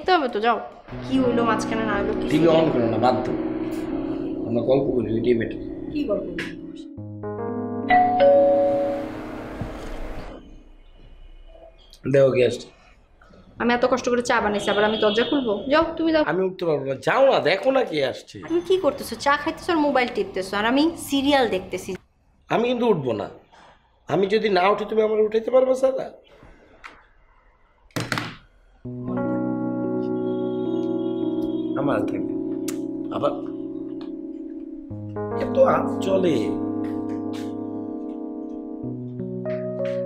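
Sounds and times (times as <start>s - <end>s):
electronic doorbell chime: 7.8s - 9.8s.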